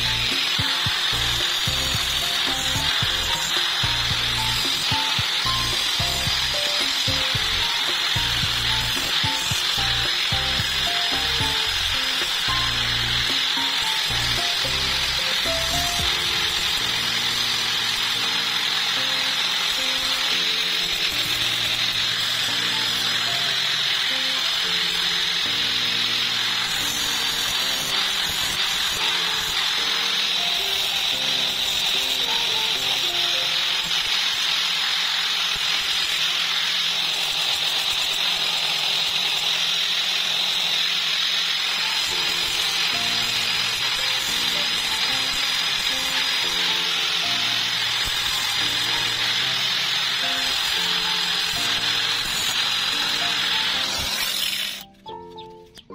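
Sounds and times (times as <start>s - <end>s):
background music with melody: 0.0s - 34.0s, 42.0s - 55.9s
angle grinder grinding wood: 0.0s - 55.9s.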